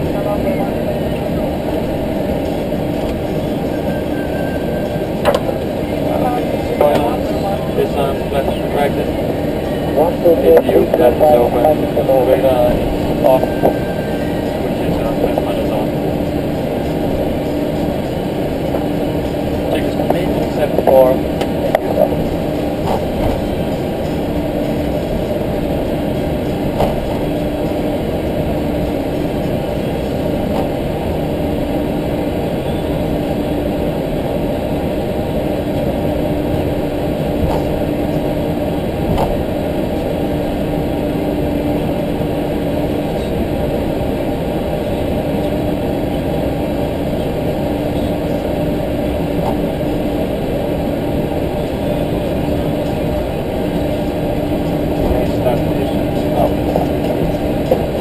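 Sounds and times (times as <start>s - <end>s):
airliner cockpit engine noise: 0.0s - 58.0s.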